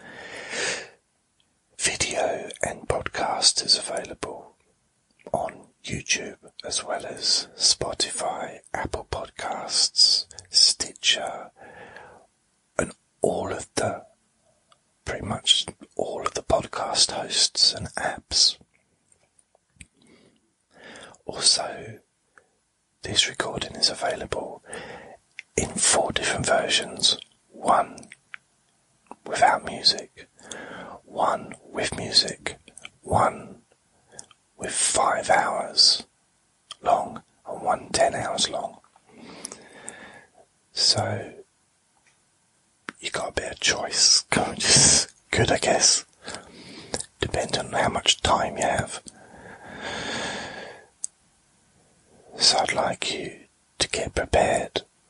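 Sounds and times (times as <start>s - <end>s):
man whispering: 0.0s - 0.9s, 1.8s - 4.6s, 5.2s - 11.7s, 12.8s - 14.2s, 15.0s - 18.6s, 20.8s - 22.1s, 23.0s - 28.4s, 29.1s - 36.1s, 36.7s - 40.1s, 40.7s - 41.5s, 42.9s - 51.1s, 52.2s - 54.9s.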